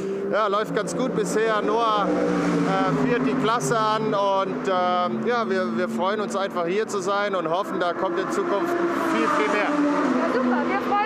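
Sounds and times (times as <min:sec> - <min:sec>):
race car engine drone: 0:00.0 - 0:11.0
man speaking: 0:00.3 - 0:09.7.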